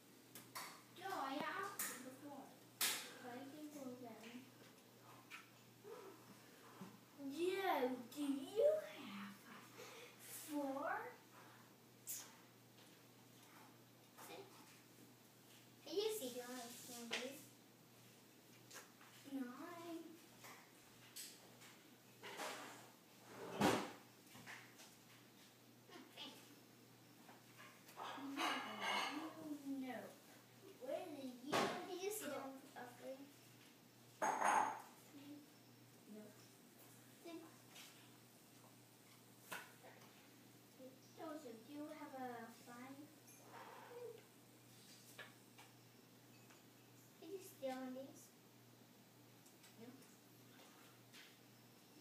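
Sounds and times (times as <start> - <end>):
faint steady hum: 0.0 - 52.0
faint irregular clicks: 49.4 - 51.4.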